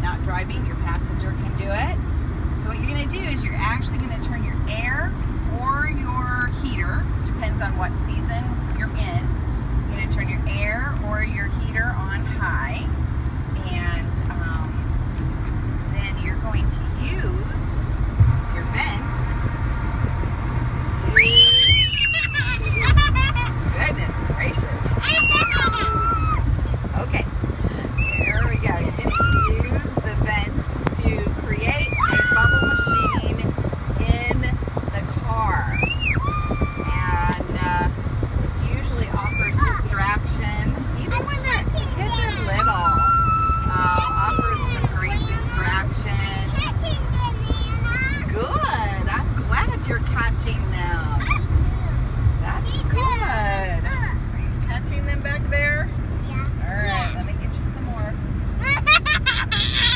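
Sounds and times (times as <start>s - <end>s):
car cabin road and engine noise: 0.0s - 59.9s
children squealing and shrieking: 21.1s - 23.6s, 25.0s - 26.5s, 28.0s - 29.7s, 31.7s - 33.3s, 35.6s - 37.2s, 39.2s - 39.8s, 42.1s - 44.9s, 58.6s - 59.9s.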